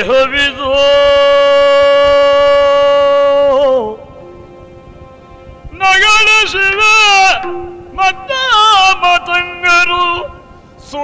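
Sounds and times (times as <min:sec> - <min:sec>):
man singing long held note: 0:00.0 - 0:11.0.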